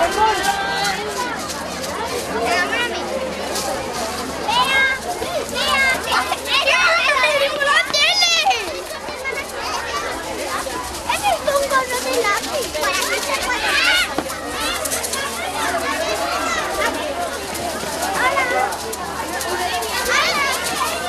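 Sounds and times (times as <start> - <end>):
children chattering and shouting: 0.0 - 21.0
street crowd noise: 0.0 - 21.0.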